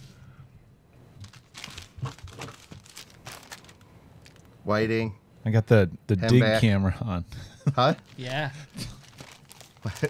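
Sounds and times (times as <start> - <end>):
plastic bag crinkling: 1.2 - 4.5, 8.0 - 10.0.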